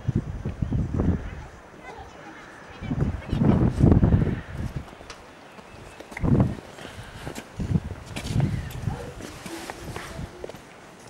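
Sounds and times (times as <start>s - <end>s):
faint distant voices: 0.8s - 7.4s
footsteps as low thuds: 3.5s - 10.7s.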